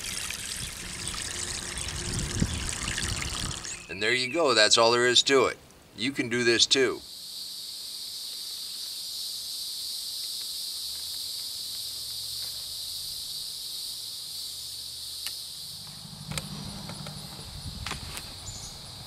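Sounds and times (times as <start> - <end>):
low hum: 0.0 - 3.9, 15.6 - 19.0
insects buzzing chorus: 0.0 - 4.0, 6.4 - 19.0.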